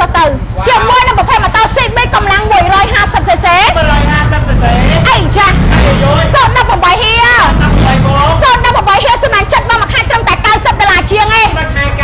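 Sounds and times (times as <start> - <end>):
woman speaking: 0.0 - 3.8, 5.0 - 7.5, 8.3 - 11.6
motorcycle engine rumbling: 0.0 - 12.0.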